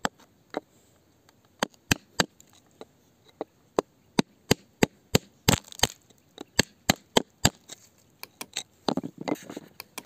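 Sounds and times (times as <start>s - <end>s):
hand tool chipping at rock: 4.2s - 10.0s.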